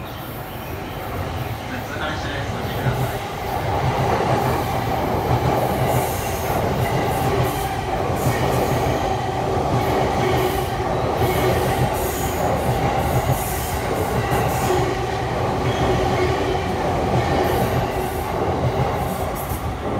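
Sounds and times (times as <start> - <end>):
train wheels rushing on rail: 0.0 - 19.9.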